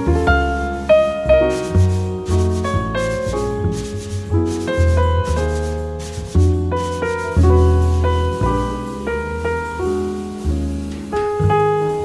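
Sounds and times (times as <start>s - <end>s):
acoustic piano: 0.0s - 12.0s
double bass notes: 0.0s - 12.0s
brushes swishing on drums: 0.5s - 12.0s.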